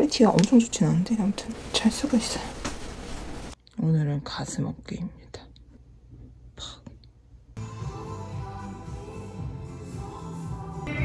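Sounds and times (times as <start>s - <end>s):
woman speaking: 0.0s - 2.6s.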